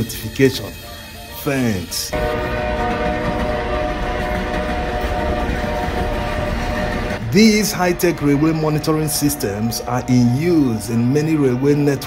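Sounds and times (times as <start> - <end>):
train horn blast: 0.5 - 12.0
train rumbling: 2.1 - 12.0.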